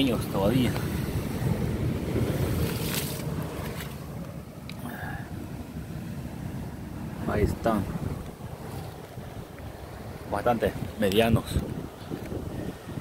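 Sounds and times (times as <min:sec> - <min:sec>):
ocean surf on rocks: 0:00.0 - 0:13.0
wind buffeting microphone: 0:00.0 - 0:13.0.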